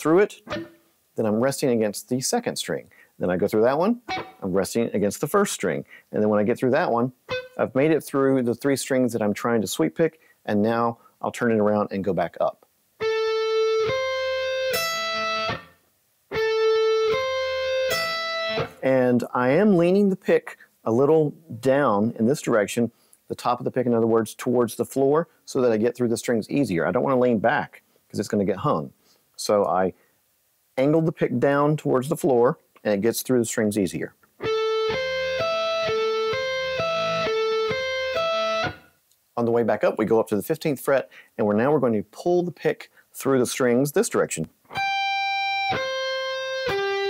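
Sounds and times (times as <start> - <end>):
electric guitar arpeggio: 0.5 - 0.8, 4.1 - 4.4, 7.3 - 7.6, 13.0 - 18.8, 34.4 - 38.8, 44.7 - 47.0.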